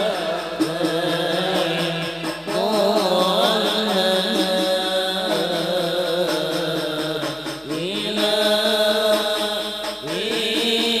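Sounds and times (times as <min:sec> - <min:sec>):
men chanting together: 0:00.0 - 0:11.0.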